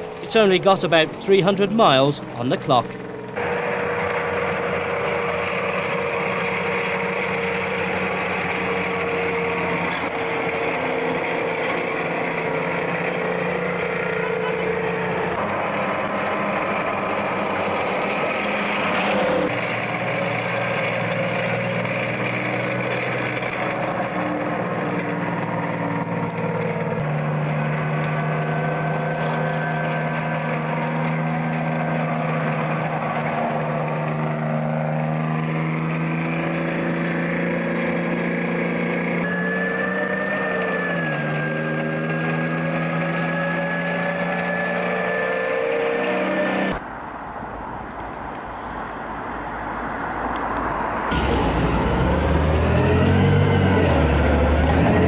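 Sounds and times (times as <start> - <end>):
tracked vehicle engines droning: 0.0 - 55.0.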